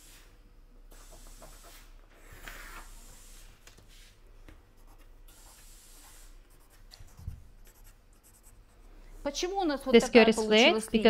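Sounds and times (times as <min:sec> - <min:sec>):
pencil scratching on paper: 0:04.8 - 0:08.9.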